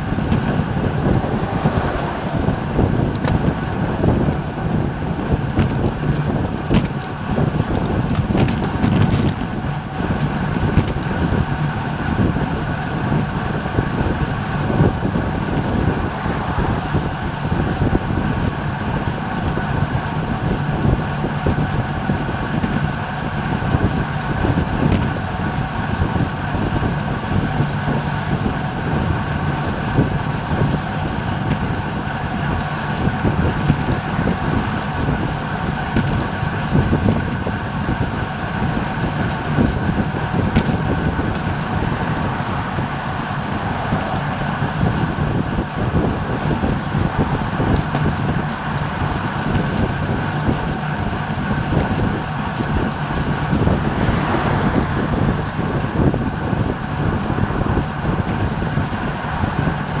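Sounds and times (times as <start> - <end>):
road noise: 0.0 - 60.0
wind rushing over microphone: 0.0 - 60.0.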